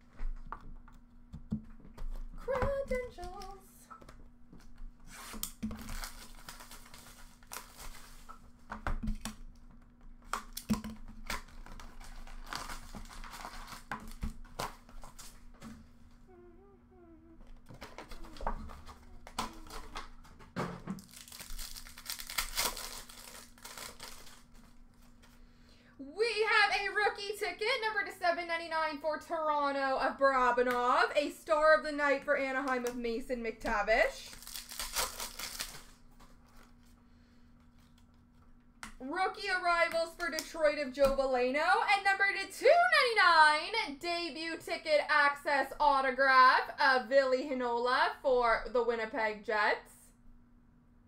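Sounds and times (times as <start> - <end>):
steady low hum: 0.0 - 51.0
foil wrappers crinkling and tearing: 5.1 - 8.6, 10.3 - 15.4, 21.0 - 25.4, 34.2 - 37.0.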